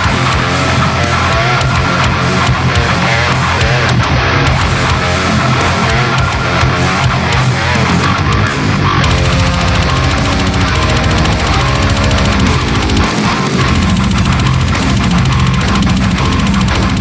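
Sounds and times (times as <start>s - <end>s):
distorted electric guitar riff: 0.0s - 17.0s.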